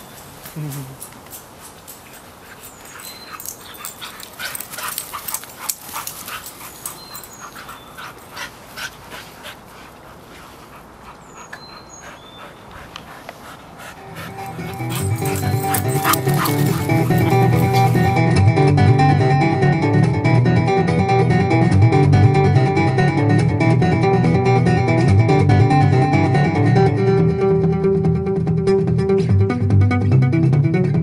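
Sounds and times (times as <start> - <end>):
dogs playing scuffles and taps: 0.0 - 11.2, 12.7 - 18.2
acoustic guitar music: 14.0 - 31.0.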